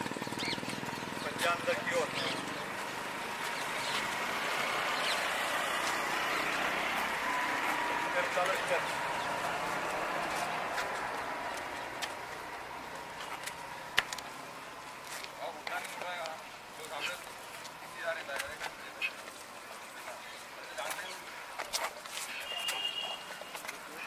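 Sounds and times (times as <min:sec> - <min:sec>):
passing motor vehicle: 0:00.0 - 0:15.1.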